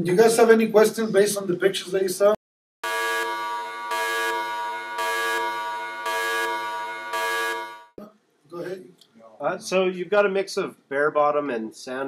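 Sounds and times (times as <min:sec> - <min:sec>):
buzzing alarm tone: 0:02.8 - 0:08.0.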